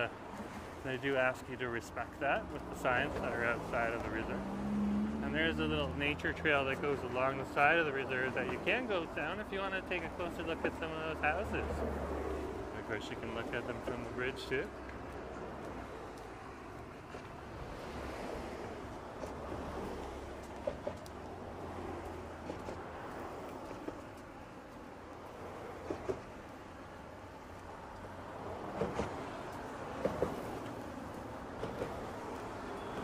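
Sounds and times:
cars passing on a bridge: 0:00.0 - 0:33.0.

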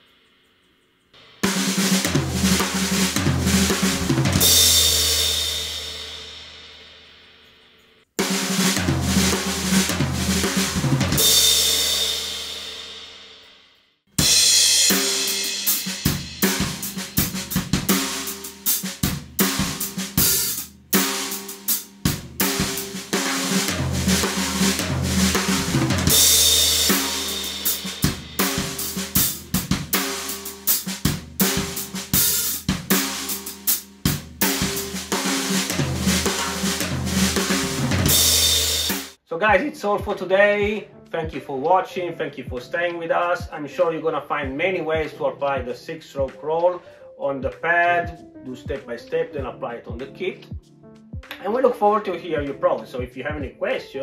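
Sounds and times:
acoustic drum kit playing: 0:01.2 - 0:07.1, 0:08.2 - 0:13.4, 0:14.1 - 0:41.4, 0:44.4 - 0:45.2, 0:47.4 - 0:51.7
cymbal crashes: 0:19.4 - 0:39.1.

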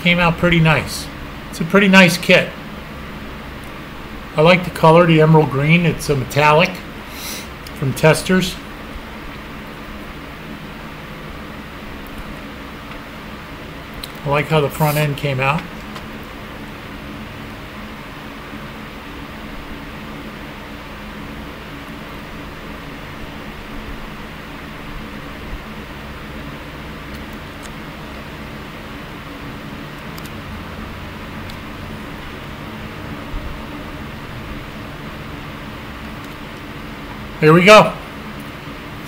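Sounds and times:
steady machine hum with hiss: 0:00.0 - 0:39.0.

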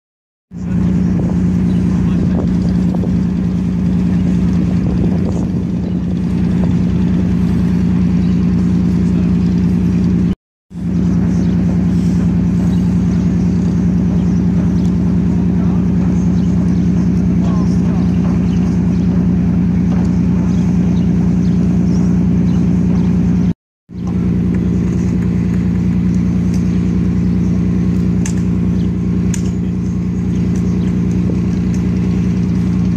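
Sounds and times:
low machinery drone: 0:00.5 - 0:32.9.

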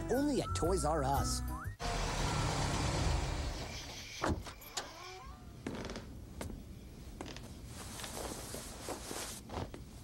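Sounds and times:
creaking squeaks: 0:03.4 - 0:06.1.

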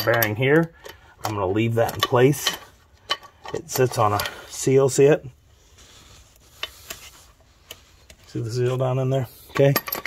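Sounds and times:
metal bearing balls clinking: 0:00.0 - 0:04.7, 0:09.4 - 0:10.0.

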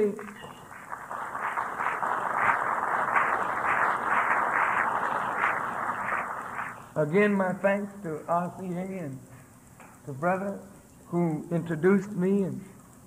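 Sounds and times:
audience applauding: 0:00.0 - 0:07.0.

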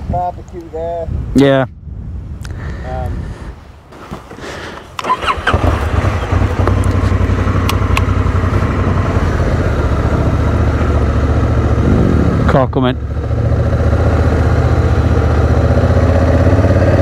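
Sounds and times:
motorcycle engine starting and idling: 0:04.3 - 0:17.0.

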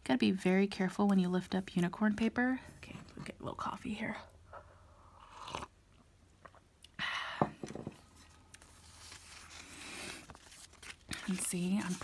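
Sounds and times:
paper crinkling and rustling: 0:08.2 - 0:12.0.

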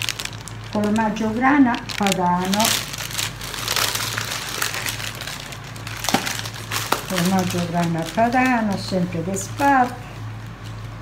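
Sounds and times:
packaging crinkling: 0:00.0 - 0:11.0
steady low hum: 0:00.0 - 0:11.0.

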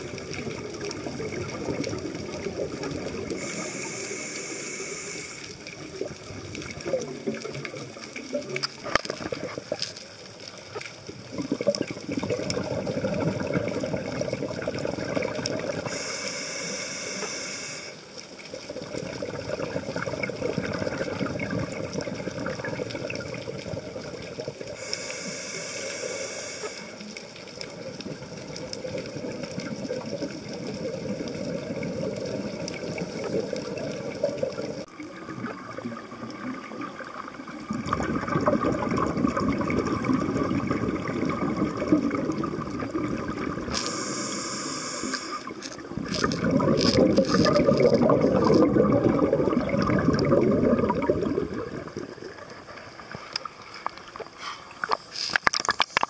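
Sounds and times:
scuba exhalation bubbling: 0:00.0 - 0:09.9, 0:11.0 - 0:16.1, 0:18.4 - 0:25.1, 0:27.5 - 0:53.2
underwater rush of water: 0:00.0 - 0:56.0.

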